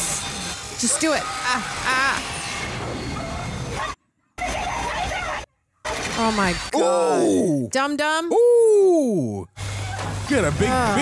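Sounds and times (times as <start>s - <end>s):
person whimpering and crying out: 6.7s - 7.7s, 8.3s - 9.4s.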